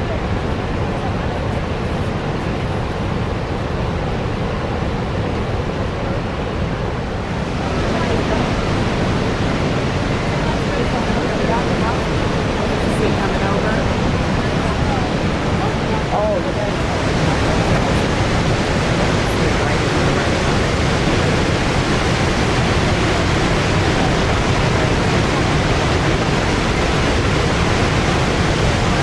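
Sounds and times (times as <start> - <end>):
faint voices: 0.0 - 29.0
waterfall roar: 0.0 - 29.0.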